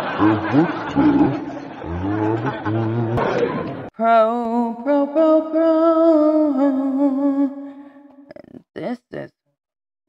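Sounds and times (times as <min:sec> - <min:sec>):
deep pitched woman's vocal sounds: 0:00.2 - 0:03.2.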